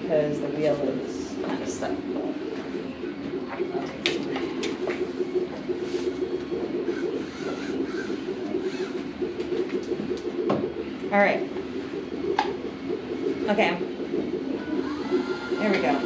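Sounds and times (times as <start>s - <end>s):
robot car motors humming: 0.0s - 16.0s.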